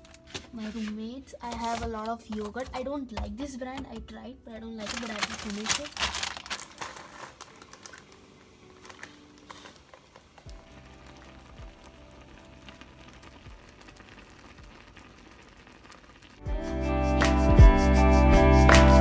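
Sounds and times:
plastic packaging crinkling: 0:00.0 - 0:02.8, 0:04.8 - 0:16.5
faint background music: 0:00.0 - 0:15.2.

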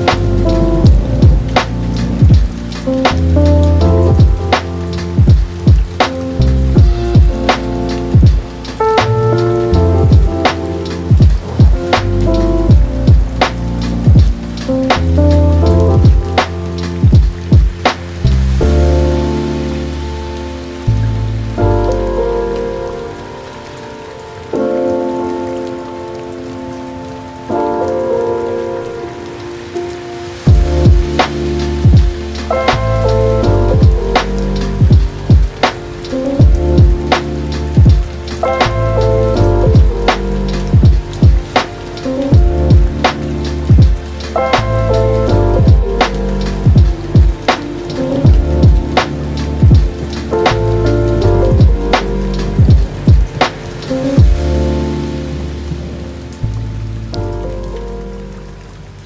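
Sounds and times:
drum beat: 0:00.0 - 0:03.4, 0:04.0 - 0:06.2, 0:06.8 - 0:09.1, 0:10.0 - 0:15.2, 0:16.0 - 0:18.0, 0:30.5 - 0:32.5, 0:33.7 - 0:35.8, 0:36.4 - 0:38.8, 0:39.6 - 0:41.7, 0:42.3 - 0:44.7, 0:45.6 - 0:50.6, 0:51.5 - 0:54.4
keyboard chords and bass: 0:00.0 - 0:59.0
rain sound: 0:00.0 - 0:59.0.

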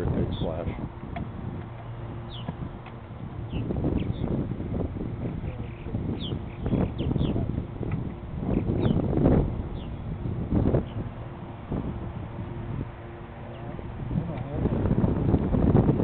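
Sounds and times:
birds chirping: 0:00.0 - 0:14.9
wind rumbling on microphone: 0:00.0 - 0:16.0.

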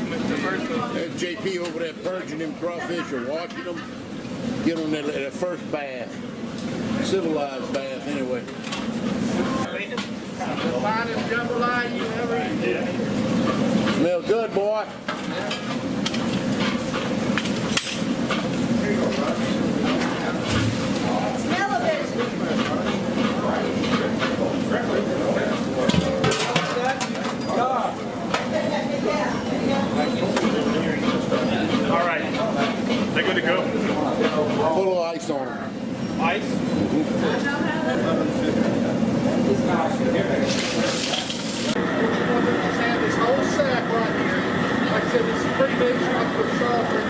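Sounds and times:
people talking: 0:00.0 - 0:03.9, 0:18.6 - 0:47.0.

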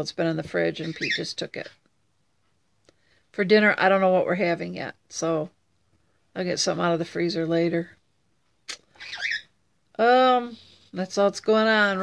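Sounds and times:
parrot squeaky chirp: 0:00.8 - 0:01.3, 0:08.9 - 0:09.6.

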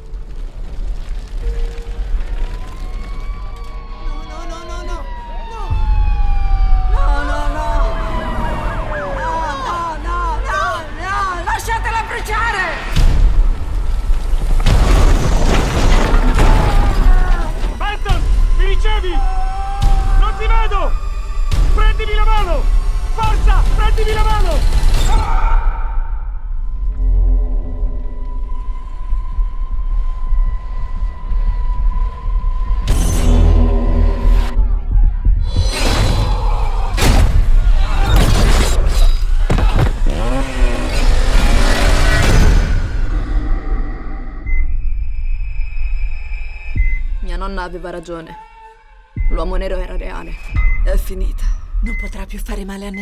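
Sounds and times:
emergency vehicle sirens wailing: 0:02.3 - 0:11.4.

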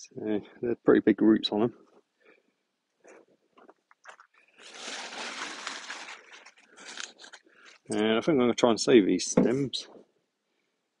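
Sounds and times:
leaves and stalks rustling: 0:04.5 - 0:08.0.

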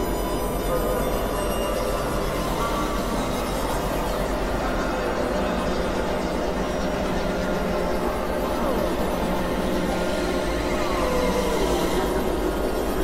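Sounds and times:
experimental electronic noise drones: 0:00.0 - 0:13.0.

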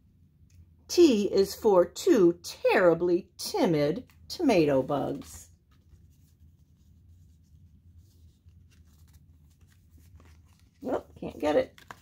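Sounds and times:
low steady hum: 0:00.0 - 0:12.0
stiff card rustling and scraping: 0:04.6 - 0:12.0.

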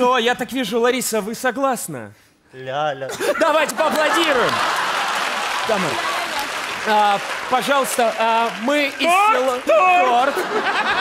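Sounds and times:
men speaking: 0:00.0 - 0:10.8
studio audience applauding: 0:03.5 - 0:11.0.

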